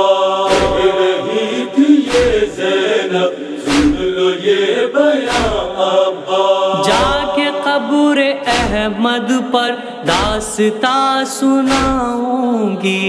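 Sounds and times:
voices chanting in chorus: 0.0s - 10.6s, 11.6s - 12.2s
heavy chest-beat slaps: 0.4s - 1.1s, 2.0s - 2.7s, 3.6s - 4.2s, 5.3s - 5.8s, 6.8s - 7.4s, 8.5s - 9.0s, 10.1s - 10.6s, 11.7s - 12.2s.

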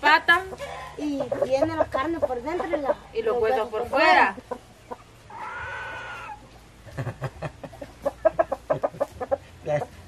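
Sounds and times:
domestic animal call: 5.3s - 6.4s.

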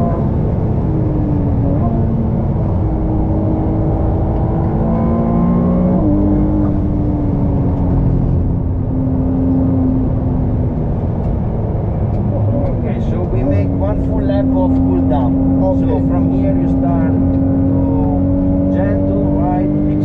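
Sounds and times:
car engine accelerating: 0.0s - 20.0s
road and wind noise: 0.0s - 20.0s.

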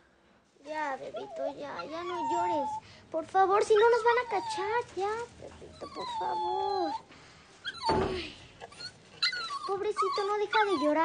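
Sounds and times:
puppy whimpering: 1.0s - 2.8s, 3.6s - 11.0s.

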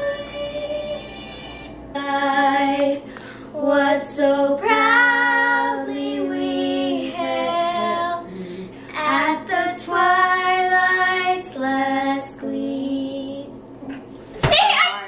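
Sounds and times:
girl singing: 1.9s - 13.6s.

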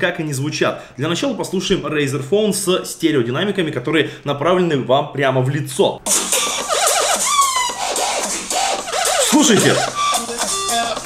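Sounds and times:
music from phone speakers: 6.1s - 11.0s.

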